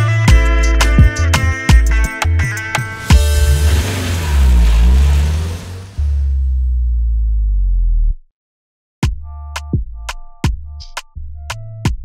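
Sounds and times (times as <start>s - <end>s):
car driving away: 2.4s - 7.2s.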